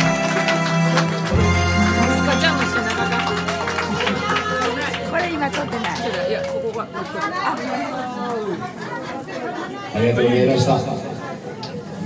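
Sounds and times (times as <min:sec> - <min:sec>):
people talking at once: 0:01.8 - 0:12.0.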